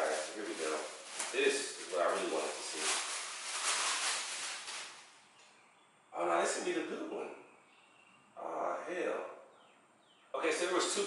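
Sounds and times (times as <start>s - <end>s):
plastic bag crinkling: 0.0s - 5.2s.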